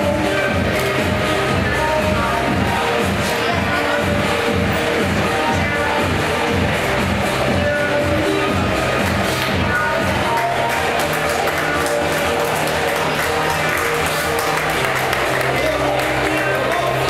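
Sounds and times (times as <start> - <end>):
music with bass line: 0.0 - 17.0.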